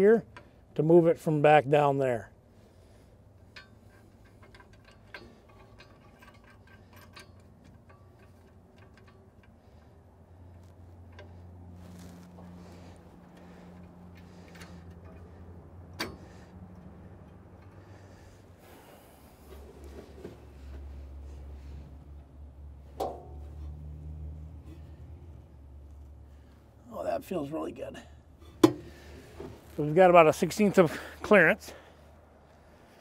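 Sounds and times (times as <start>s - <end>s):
low steady hum: 0.0s - 33.0s.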